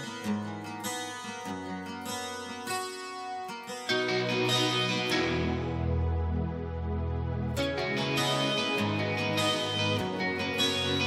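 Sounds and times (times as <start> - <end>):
acoustic guitar picking melody: 0.0 - 11.0.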